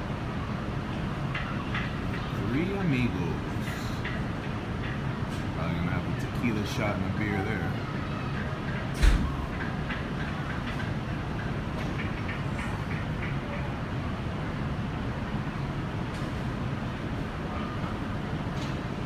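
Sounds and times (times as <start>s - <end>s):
distant voices: 0.0s - 19.0s
low mechanical hum and rumble: 0.0s - 19.0s.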